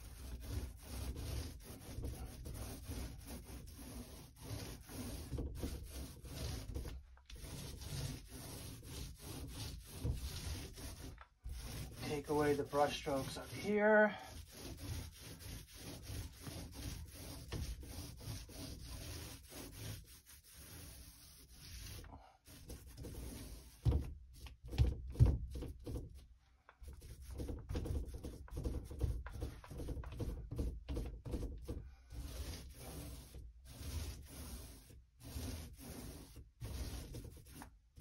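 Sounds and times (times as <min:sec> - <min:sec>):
paint brush stroking on wood: 0:00.0 - 0:24.7, 0:26.8 - 0:37.8.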